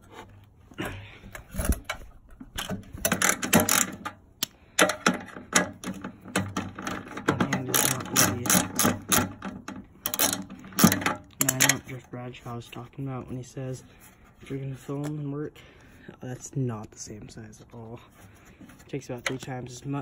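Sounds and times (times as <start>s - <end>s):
socket ratchet clicking: 3.0s - 11.7s.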